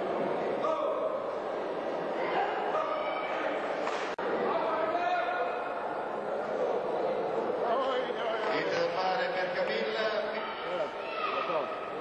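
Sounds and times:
background murmur: 0.0 - 12.0
people talking and calling out: 0.0 - 12.0.

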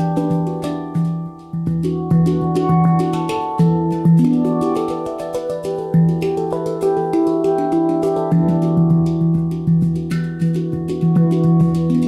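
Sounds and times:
handpan notes ringing: 0.0 - 12.0
low handpan ding: 0.0 - 12.0.

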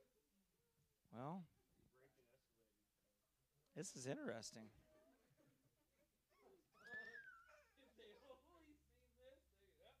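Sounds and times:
faint high-pitched laugh: 6.3 - 8.6.

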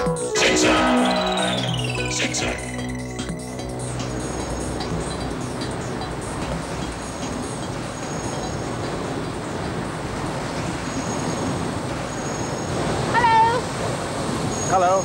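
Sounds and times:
steam pumping engines running: 3.5 - 13.4.

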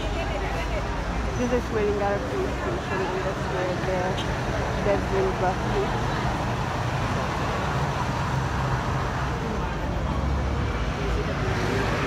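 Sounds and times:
road and traffic noise: 0.0 - 12.0.

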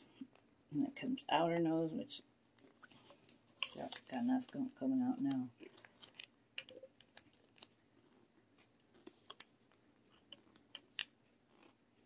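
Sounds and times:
small plastic clicks: 8.6 - 11.7.

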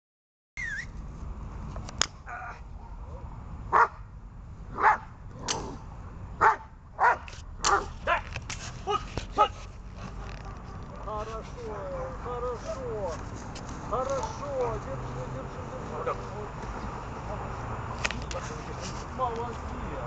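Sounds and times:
dog barking: 2.8 - 4.0, 4.8 - 5.1, 6.4 - 8.2, 10.1 - 12.3, 14.6 - 14.9
sharp click: 5.4 - 5.7.

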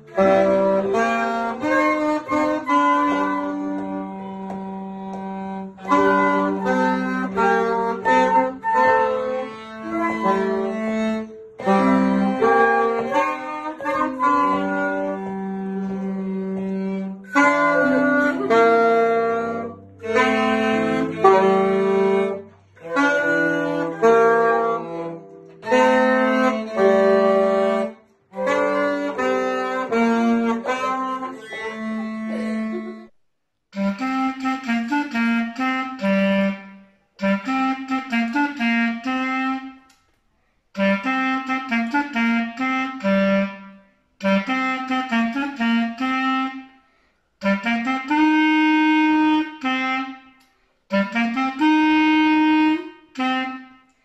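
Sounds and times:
digital piano chords: 0.0 - 33.1
solo clarinet: 0.0 - 40.0, 40.8 - 54.0.

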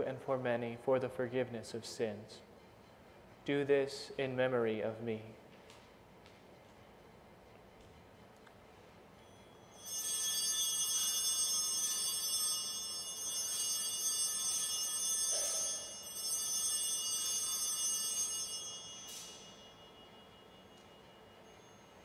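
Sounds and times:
small hand bells ringing: 9.3 - 22.0.

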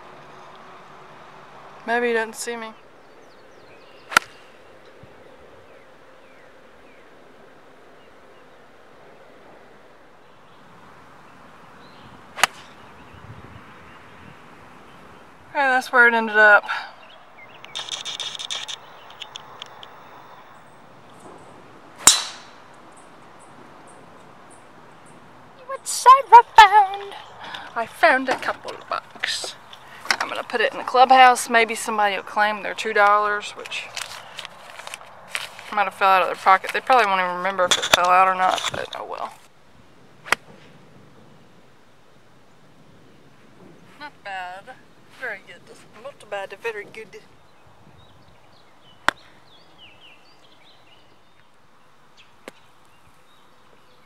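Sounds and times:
golf club striking ball: 4.1 - 4.4, 12.4 - 12.8, 22.0 - 22.7.

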